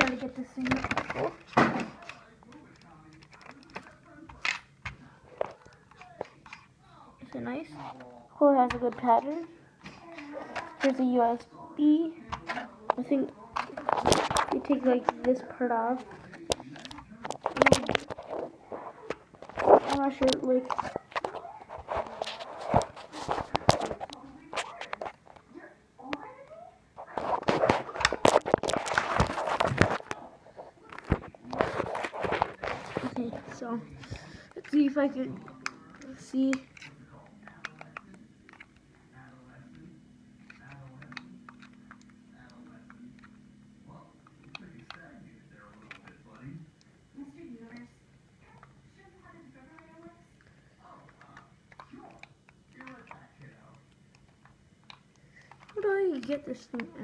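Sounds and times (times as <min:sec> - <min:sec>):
plastic packaging crackling and rustling: 0:12.4 - 0:25.4, 0:27.0 - 0:39.5.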